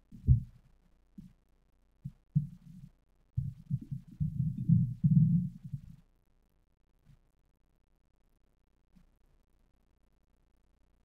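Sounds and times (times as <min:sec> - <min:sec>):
muffled low thumps: 0:00.2 - 0:00.6.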